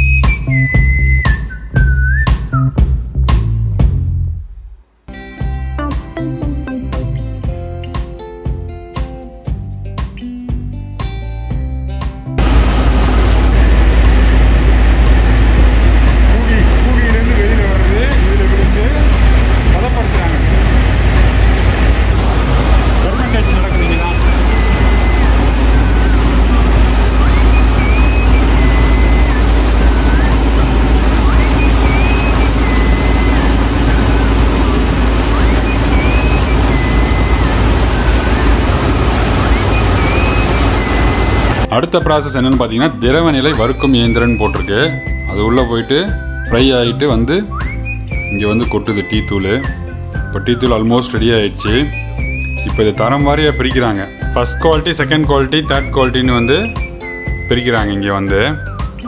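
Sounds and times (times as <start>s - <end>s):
background music: 5.1s - 59.0s
factory machinery rumbling: 12.4s - 41.7s.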